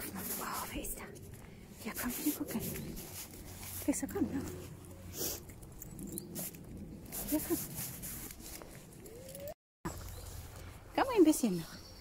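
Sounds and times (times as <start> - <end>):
dog sniffing and snuffling: 0.0 - 9.5.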